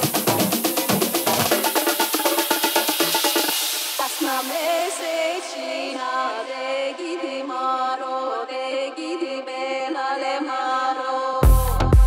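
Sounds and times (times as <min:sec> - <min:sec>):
bass and kick drum beat: 0:00.0 - 0:03.9, 0:11.4 - 0:12.0
house music: 0:00.0 - 0:07.2, 0:11.4 - 0:12.0
chant-like vocal line: 0:03.6 - 0:12.0.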